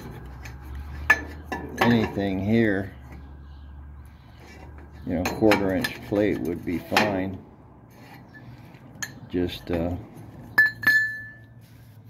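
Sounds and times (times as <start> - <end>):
metal clinks: 10.5 - 11.6.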